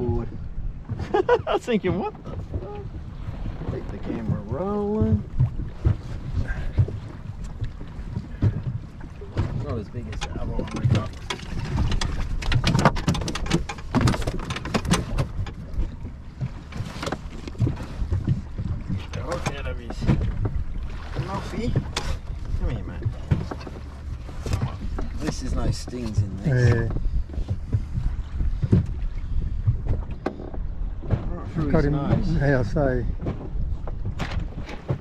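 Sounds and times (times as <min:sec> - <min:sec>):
low rumble: 0:00.0 - 0:35.0
water against boat: 0:00.0 - 0:35.0
wind: 0:00.0 - 0:35.0
gear knocking and clattering: 0:08.2 - 0:20.6.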